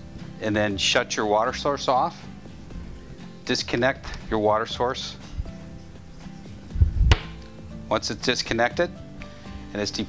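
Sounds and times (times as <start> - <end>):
soft background music: 0.0 - 10.0
dull low thump with sharp click: 6.8 - 7.5.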